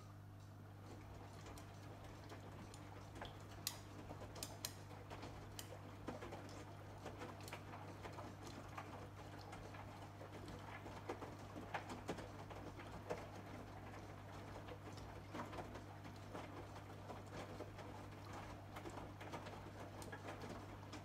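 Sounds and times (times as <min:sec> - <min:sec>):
washing machine motor hum: 0:00.0 - 0:21.0.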